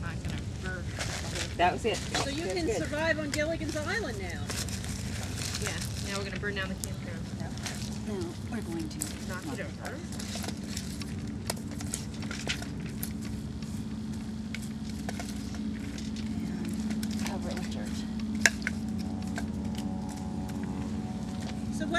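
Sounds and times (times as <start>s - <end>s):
campfire crackling: 0.0s - 21.9s
steady low hum: 0.0s - 21.9s.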